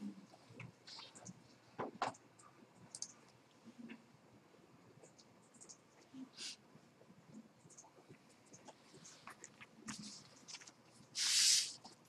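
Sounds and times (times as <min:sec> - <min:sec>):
computer mouse clicking: 0:02.0 - 0:03.4, 0:05.0 - 0:06.1, 0:07.6 - 0:10.8.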